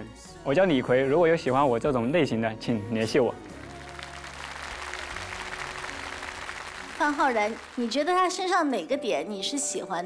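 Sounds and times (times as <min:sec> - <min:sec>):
soft background music: 0:00.0 - 0:10.0
studio applause: 0:03.4 - 0:08.5.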